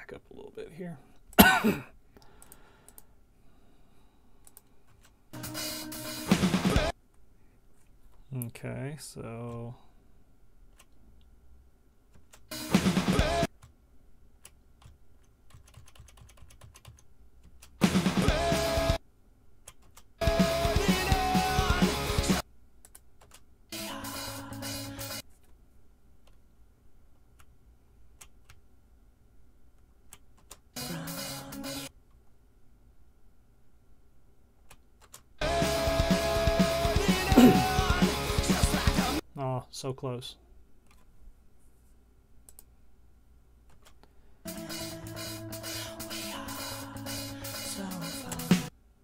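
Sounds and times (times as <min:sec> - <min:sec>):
drum kit with rock backing track: 0:05.4 - 0:06.9, 0:12.6 - 0:13.5, 0:17.8 - 0:19.0, 0:20.2 - 0:22.4, 0:35.4 - 0:39.2
computer keyboard keys clicking: 0:14.4 - 0:17.8, 0:19.6 - 0:20.1, 0:22.8 - 0:23.4, 0:30.1 - 0:30.6, 0:34.6 - 0:35.3.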